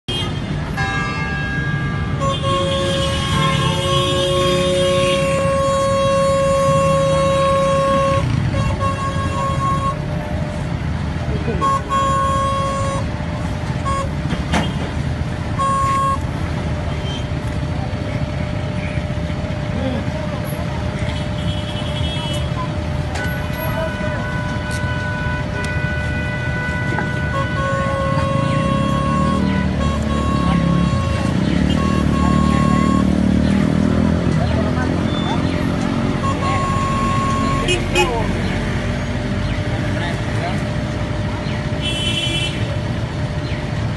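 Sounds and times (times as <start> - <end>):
car horns honking: 0.0 - 17.3, 23.2 - 38.4, 41.8 - 42.9
steady traffic noise: 0.0 - 43.9
higher-pitched car horn: 0.1 - 10.3, 11.5 - 13.2, 13.8 - 14.8, 15.5 - 16.4, 23.2 - 33.6, 36.0 - 38.2, 41.8 - 42.7.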